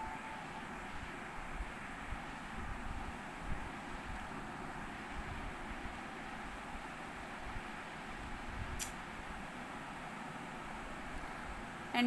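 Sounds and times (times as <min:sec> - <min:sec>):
faint ringing tone: 0:00.0 - 0:00.8
low rumble and hiss: 0:00.0 - 0:12.0.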